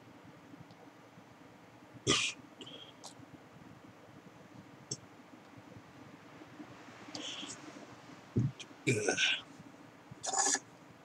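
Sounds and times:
person breathing sharply: 0:07.2 - 0:07.6.

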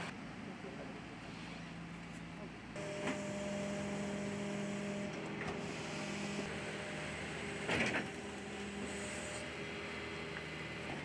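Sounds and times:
garbage truck engine and hydraulics: 0:00.0 - 0:11.0.

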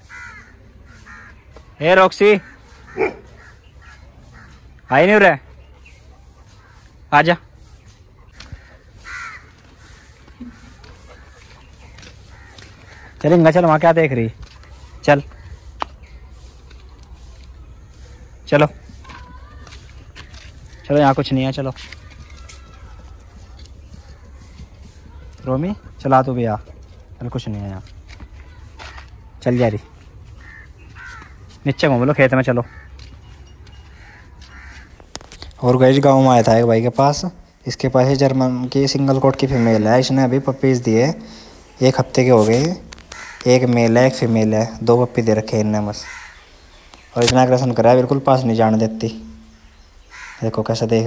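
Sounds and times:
harsh caw-like animal call: 0:00.0 - 0:05.0, 0:08.4 - 0:13.4, 0:30.3 - 0:31.6, 0:32.6 - 0:33.2, 0:33.9 - 0:35.1, 0:42.3 - 0:44.3, 0:45.8 - 0:46.6, 0:49.2 - 0:50.7
faint outdoor background: 0:00.0 - 0:51.0.

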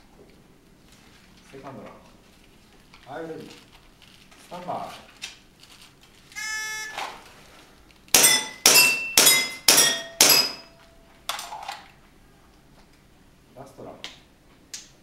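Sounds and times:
shot timer beep: 0:06.4 - 0:07.0
short ringing tone: 0:06.4 - 0:07.2
airsoft pistol shots: 0:08.1 - 0:10.7.

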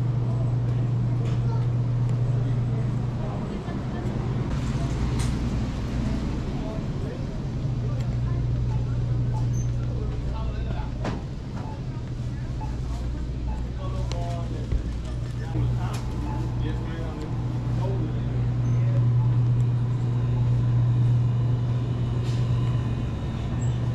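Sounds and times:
faint voices: 0:00.0 - 0:23.9
low hum of store machinery: 0:00.0 - 0:23.9.

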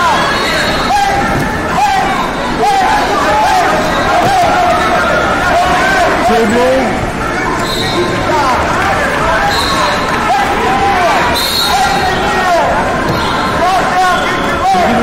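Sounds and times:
crowd shouting: 0:00.0 - 0:15.0.

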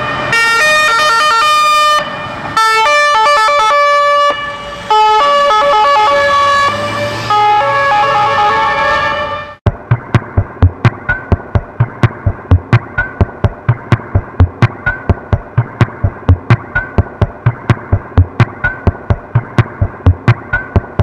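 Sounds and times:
drum machine hits: 0:09.6 - 0:21.0.

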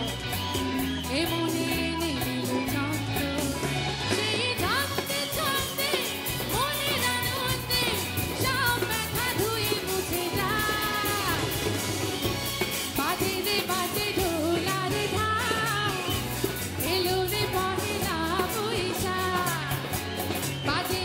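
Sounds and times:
band with tabla and drums: 0:00.0 - 0:21.0
woman singing into a microphone: 0:00.8 - 0:11.8, 0:12.9 - 0:21.0.

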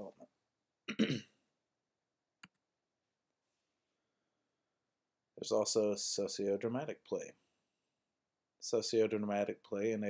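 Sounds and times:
man clearing throat: 0:00.9 - 0:01.4.

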